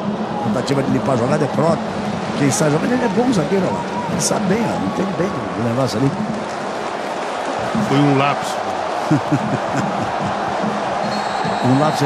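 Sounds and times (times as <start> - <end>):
stadium crowd noise: 0.0 - 12.0
men talking and laughing: 2.4 - 11.8.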